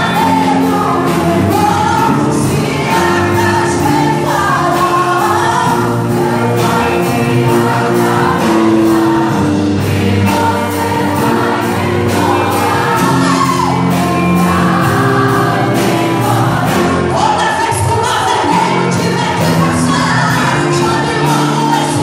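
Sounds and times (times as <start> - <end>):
woman singing gospel song: 0.0 - 22.0.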